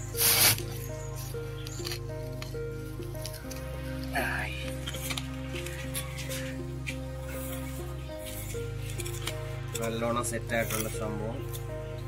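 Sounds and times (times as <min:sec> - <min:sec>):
low drone: 0:00.0 - 0:12.0
slow instrumental melody: 0:00.0 - 0:12.0.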